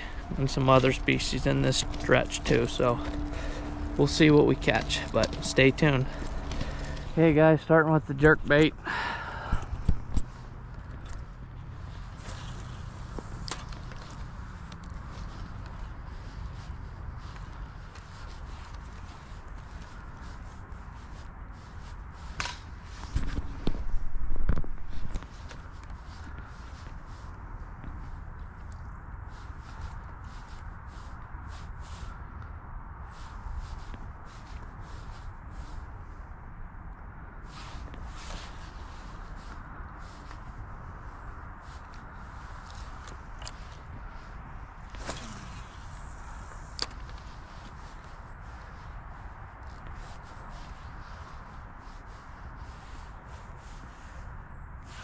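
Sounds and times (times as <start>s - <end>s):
steady outdoor hiss: 0.0s - 55.0s
handling rustles: 0.1s - 8.8s
rod swish: 44.8s - 47.8s.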